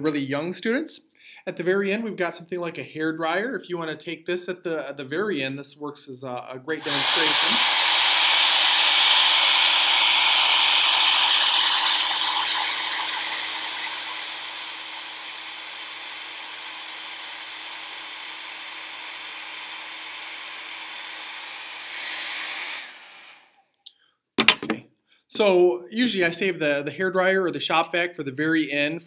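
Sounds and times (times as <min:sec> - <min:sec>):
hair dryer running: 0:06.8 - 0:23.4.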